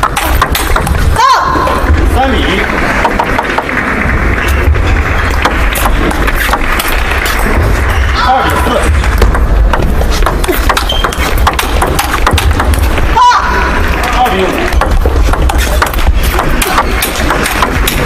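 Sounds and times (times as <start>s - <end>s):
table tennis ball bouncing: 0.0s - 1.1s, 2.7s - 3.9s, 5.3s - 7.8s, 8.9s - 13.1s, 14.7s - 18.0s.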